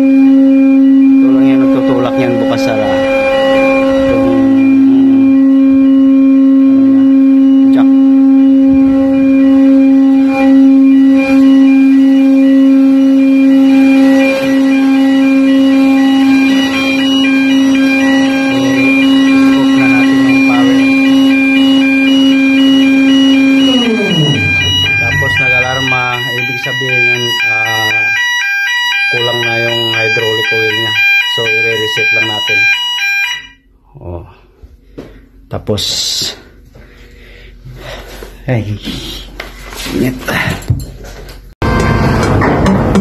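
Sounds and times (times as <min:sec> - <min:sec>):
hydraulic pump droning whine: 0:00.0 - 0:33.6
electronic alarm beeping: 0:00.0 - 0:33.7.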